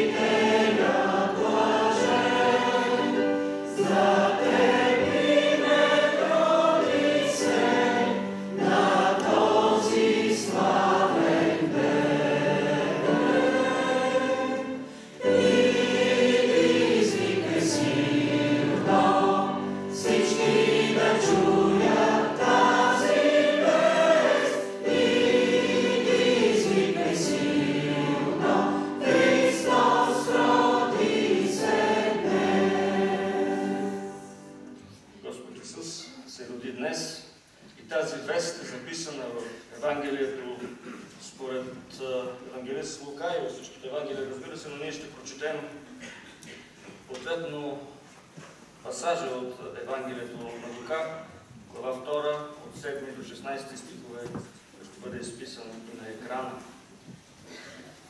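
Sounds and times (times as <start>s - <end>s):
choir singing a hymn: 0.0s - 35.4s.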